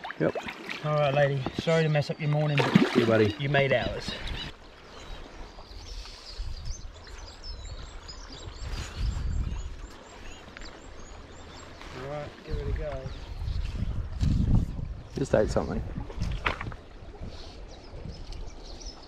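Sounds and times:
low rumbles on microphone: 0:12.5 - 0:18.6.

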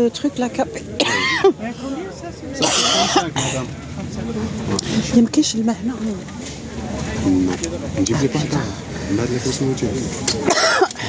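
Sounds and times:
person coughing: 0:02.6 - 0:03.6, 0:10.5 - 0:10.9.

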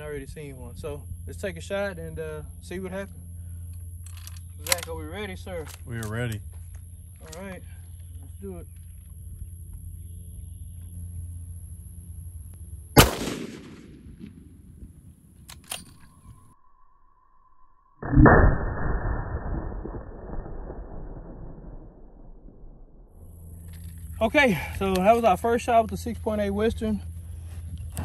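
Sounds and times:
rifle shot crack with echo: 0:13.0 - 0:15.0
deep muffled slowed-down boom: 0:18.0 - 0:23.3.

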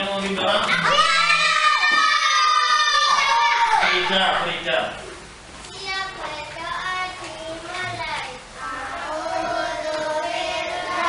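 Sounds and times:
children singing: 0:08.6 - 0:11.0.

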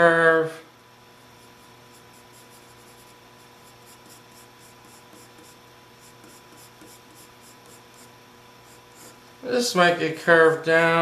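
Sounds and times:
pencil scratching on paper: 0:01.4 - 0:09.2.

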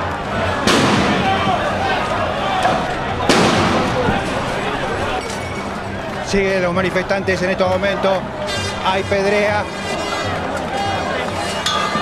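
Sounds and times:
crowd shouting: 0:00.0 - 0:12.0
loud bangs: 0:00.6 - 0:01.8, 0:02.6 - 0:05.1.

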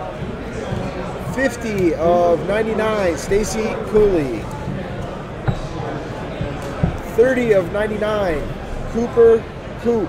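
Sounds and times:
murmur of background voices: 0:00.0 - 0:10.0
dull thuds on tabletop: 0:06.4 - 0:07.1.

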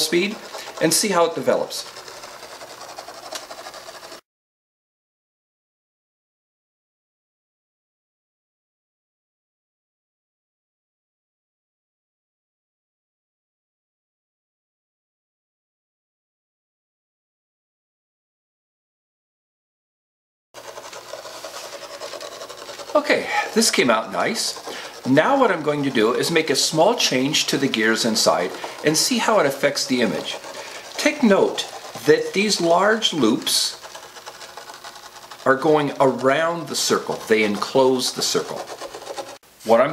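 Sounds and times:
steel ball rasping through sand: 0:00.0 - 0:04.2, 0:20.6 - 0:39.4.

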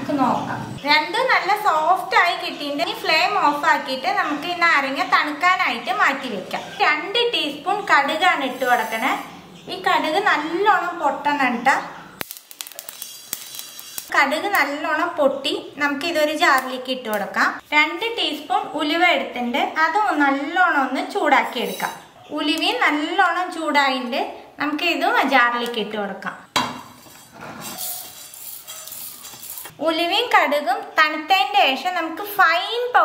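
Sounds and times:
seeds rattling in metal pan: 0:12.2 - 0:14.1, 0:27.7 - 0:29.7
seeds crackling in a pan: 0:12.2 - 0:14.7
light sizzle: 0:12.2 - 0:14.8, 0:26.9 - 0:29.7.

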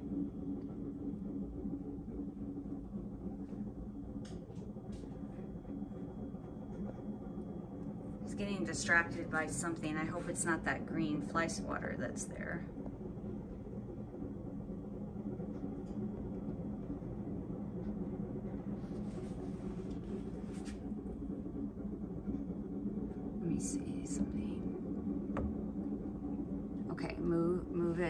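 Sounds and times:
low room hum: 0:00.0 - 0:28.0.

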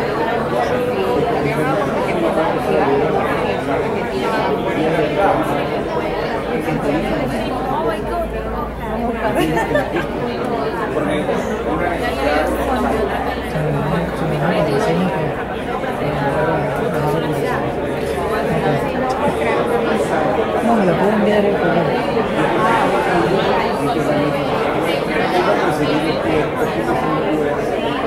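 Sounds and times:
babble of overlapping conversations: 0:00.0 - 0:28.0.

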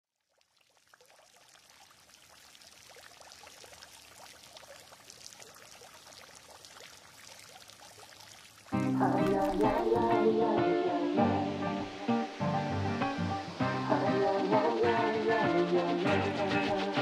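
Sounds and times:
fountain water splashing and trickling: 0:00.2 - 0:10.1.

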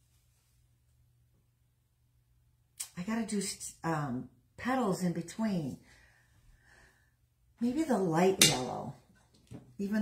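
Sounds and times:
woman speaking: 0:02.8 - 0:05.8, 0:07.6 - 0:09.1, 0:09.8 - 0:10.0.

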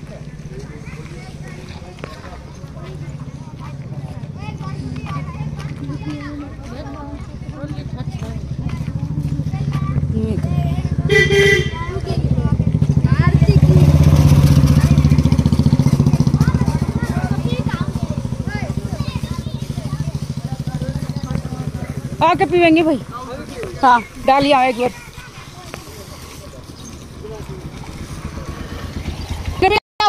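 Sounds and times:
motorcycle engine passing: 0:00.0 - 0:29.8.

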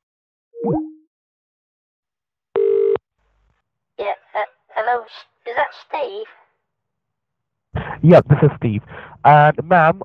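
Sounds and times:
telephone line beep: 0:02.6 - 0:03.0.

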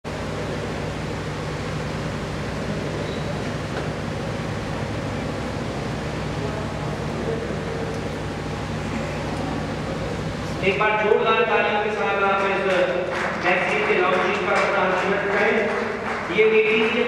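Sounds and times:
constant low hum: 0:00.1 - 0:17.0.

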